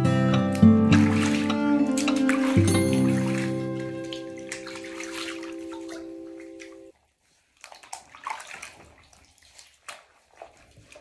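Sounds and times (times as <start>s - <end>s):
held chord of background music: 0.0s - 4.5s
bathwater splashing: 0.0s - 11.0s.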